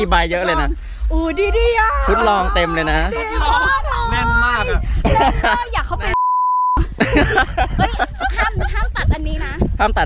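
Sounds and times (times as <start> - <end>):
censor bleep tone: 6.2 - 6.8.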